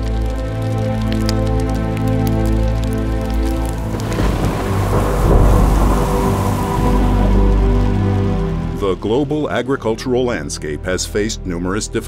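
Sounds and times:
faint crackles: 0.0 - 8.9
heavy rain hiss: 0.0 - 9.6
music of sustained chords: 0.0 - 10.8
deep rolling thunder: 3.2 - 9.2.

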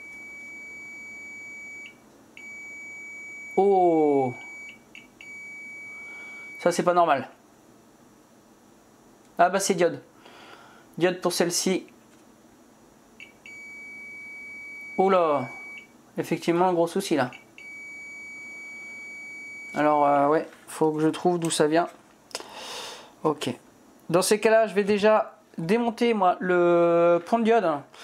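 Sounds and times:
multimeter continuity beep: 0.0 - 6.8, 13.2 - 15.9, 17.3 - 20.0.

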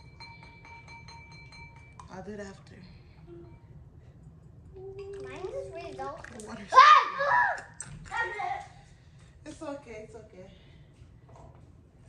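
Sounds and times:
wooden stick clinking on ceramic bowl: 0.0 - 2.2
steady high ringing tone: 0.0 - 5.1.

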